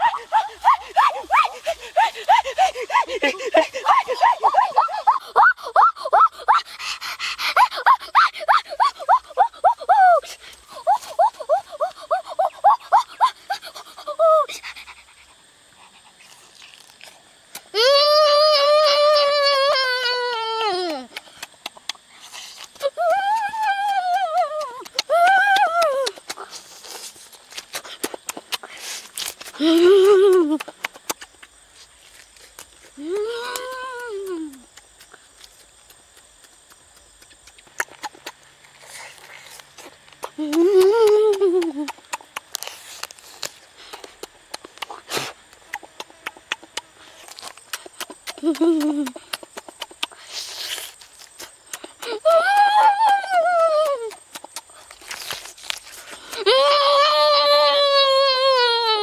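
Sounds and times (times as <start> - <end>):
boy making mmm sounds: 0.0 - 31.4, 32.5 - 44.1, 44.8 - 59.0
chewing and lip-smacking: 14.6 - 17.7, 20.7 - 56.4.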